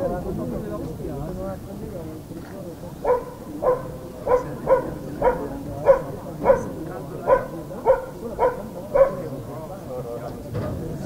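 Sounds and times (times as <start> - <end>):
dog barking: 3.0 - 9.4.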